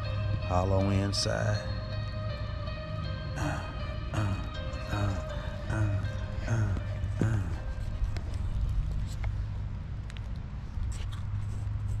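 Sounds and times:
handling and wind noise: 6.7s - 12.0s.

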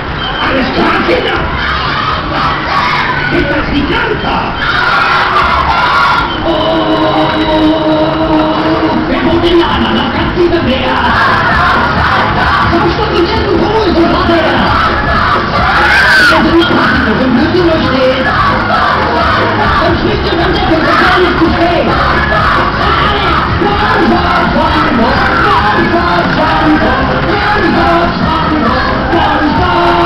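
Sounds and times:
loud fairground music: 0.0s - 30.0s
riders yelling and screaming: 0.1s - 9.3s, 14.0s - 30.0s.

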